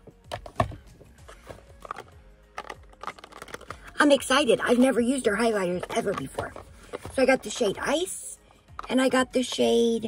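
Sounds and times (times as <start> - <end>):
faint background music: 0.0 - 10.0
cardboard boxes clicking and tapping: 0.1 - 3.8.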